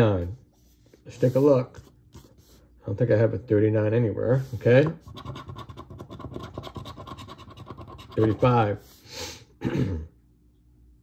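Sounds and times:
coin scraping scratch card: 5.0 - 8.6.

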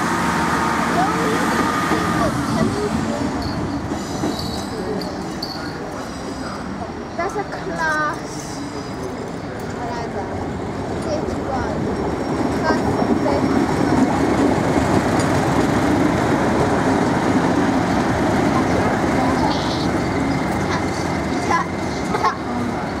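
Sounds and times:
diesel locomotive passing: 0.0 - 23.0.

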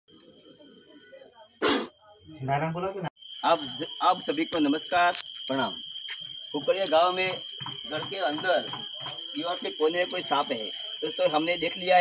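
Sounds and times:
snake hissing: 1.6 - 2.0.

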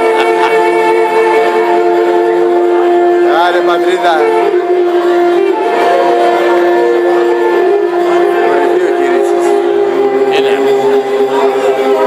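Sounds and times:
clarinet melody: 0.0 - 12.0
folk band accompaniment: 0.0 - 12.0.

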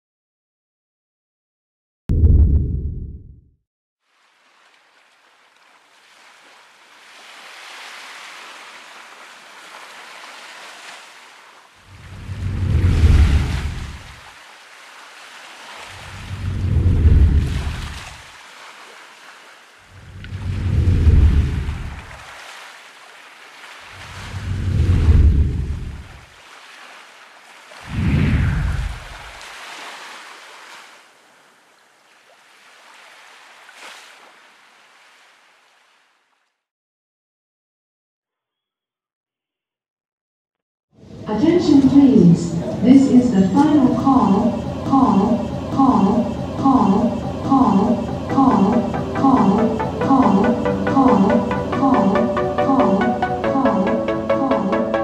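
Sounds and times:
steady wash of water: 4.0 - 36.3
waves breaking: 4.0 - 36.4, 41.0 - 55.0.

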